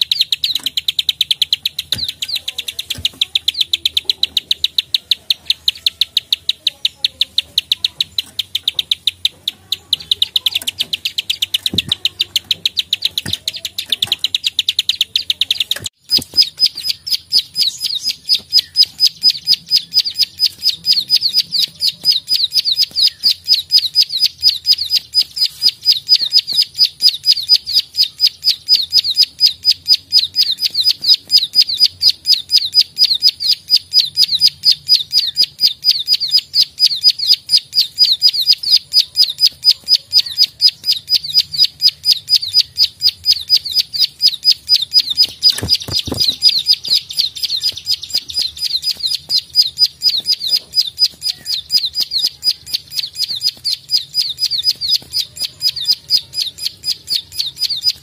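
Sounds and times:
bird sharp clicking call: 0.0 - 58.0.

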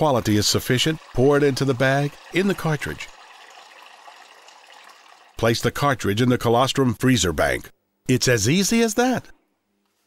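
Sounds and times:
liquid pouring: 0.0 - 5.6.

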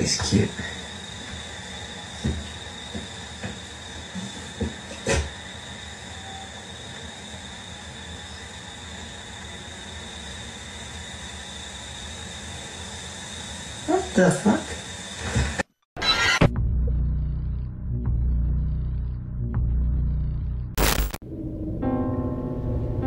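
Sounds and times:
thin high whine: 0.0 - 16.4.

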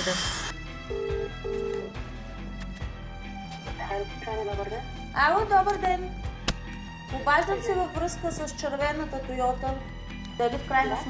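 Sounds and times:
telephone ringback tone: 0.8 - 2.0.

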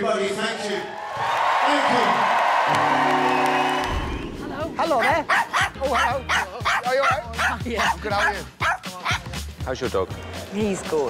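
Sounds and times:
background music: 0.0 - 11.0
audience applause and cheering: 0.2 - 6.7
small dog yapping: 5.3 - 9.3.

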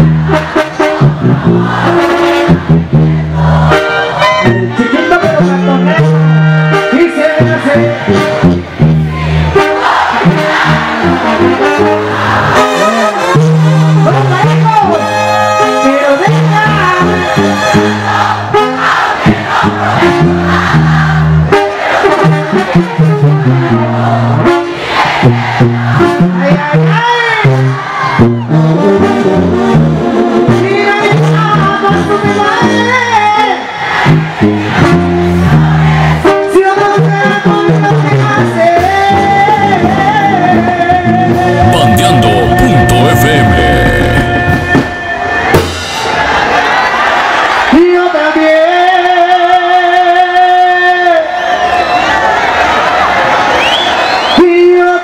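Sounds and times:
tuba bass line: 0.0 - 33.2, 34.1 - 45.7
brass band playing: 0.0 - 47.3
trumpets and trombones: 0.0 - 47.3.

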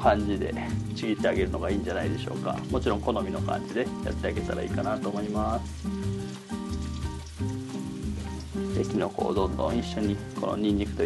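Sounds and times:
mushrooms sizzling in oil: 0.0 - 11.0
soft background music: 0.0 - 11.0.

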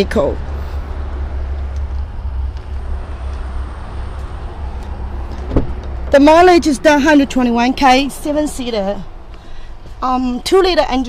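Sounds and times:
low outdoor rumble: 0.0 - 11.0
car door thump: 5.4 - 5.9.

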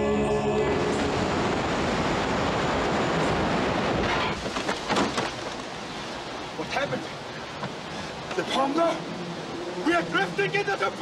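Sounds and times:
river rapids rushing: 0.0 - 11.0.

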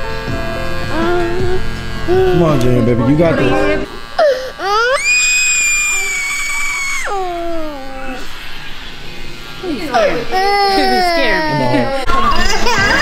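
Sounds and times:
boy screaming and crying: 4.2 - 8.2.

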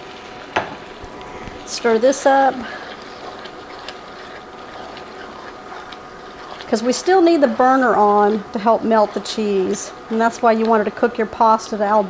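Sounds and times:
wooden spoon stirring food in skillet: 0.8 - 12.0.

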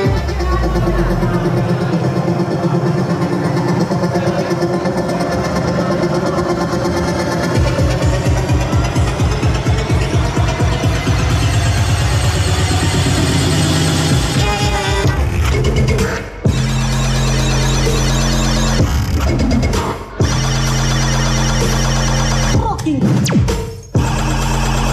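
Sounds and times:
heavy pulsing bass line: 0.0 - 24.9
loud electronic dance music: 0.0 - 24.9.

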